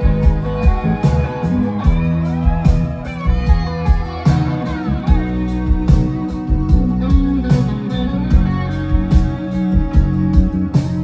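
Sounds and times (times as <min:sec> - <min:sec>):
bending lead guitar lines: 0:00.0 - 0:11.0
live rock band playing: 0:00.0 - 0:11.0
saxophone: 0:00.0 - 0:11.0.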